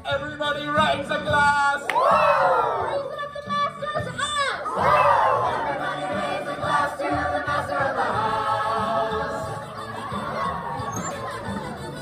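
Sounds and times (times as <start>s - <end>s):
group shouting and cheering: 1.8s - 3.2s, 4.2s - 12.0s.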